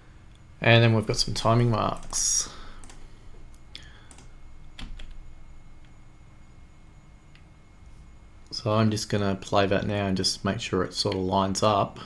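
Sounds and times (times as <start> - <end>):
faint background hum: 0.0 - 12.0
computer key clicks: 2.8 - 5.2.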